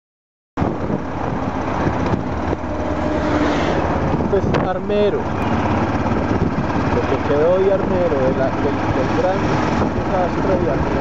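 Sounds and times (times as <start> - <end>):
motorcycle engine riding: 0.6 - 11.0
wind noise: 0.6 - 11.0.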